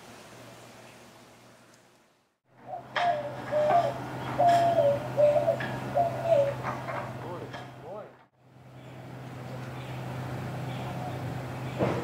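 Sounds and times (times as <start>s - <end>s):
steady low hum: 2.5s - 12.0s
dove cooing: 2.6s - 7.5s.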